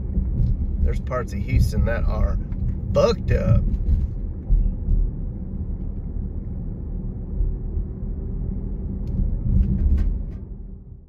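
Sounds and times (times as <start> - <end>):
car road noise from inside: 0.0 - 11.0.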